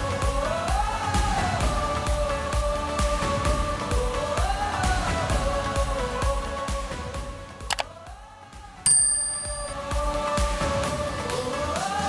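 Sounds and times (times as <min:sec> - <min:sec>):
bright bell-like ding: 0:08.9 - 0:09.8.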